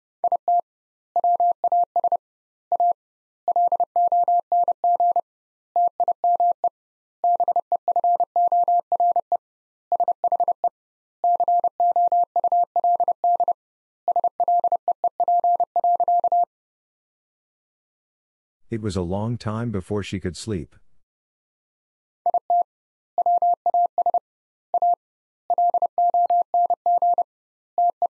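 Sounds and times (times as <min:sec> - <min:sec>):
morse code beeps: 0:11.3 - 0:16.5, 0:23.2 - 0:24.2, 0:24.8 - 0:27.2
person speaking: 0:18.7 - 0:20.9.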